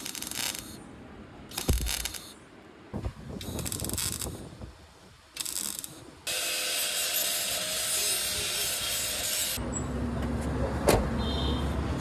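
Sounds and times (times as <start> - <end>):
welding crackling hiss: 0.0 - 0.8, 1.5 - 2.4, 3.3 - 9.6.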